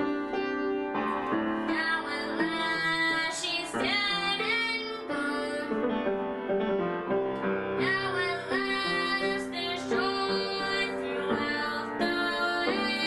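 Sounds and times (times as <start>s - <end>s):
upright piano: 0.0s - 13.0s
girl singing with vibrato: 1.6s - 5.8s, 7.8s - 13.0s.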